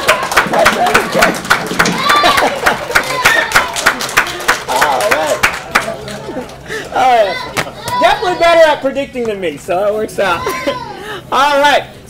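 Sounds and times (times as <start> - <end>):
audience clapping: 0.0 - 6.6.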